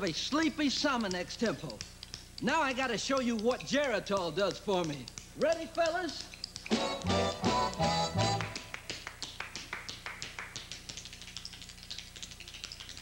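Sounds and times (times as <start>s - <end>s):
tap shoes striking floor: 0.0s - 13.0s
dance band playing: 6.7s - 8.8s.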